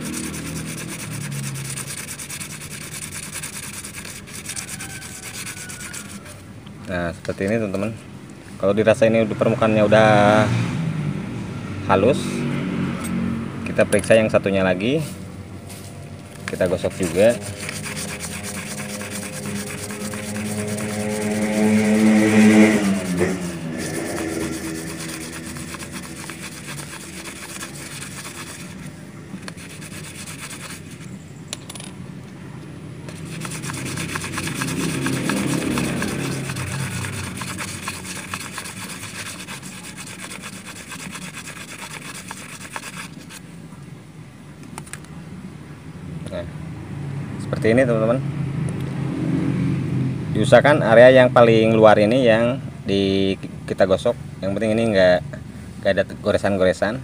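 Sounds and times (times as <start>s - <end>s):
engine rising in pitch: 0.0s - 6.4s, 8.9s - 31.0s, 32.8s - 41.0s, 46.0s - 52.0s
metal disc rubbed on sandpaper: 0.0s - 6.4s, 16.5s - 31.1s, 33.1s - 43.4s.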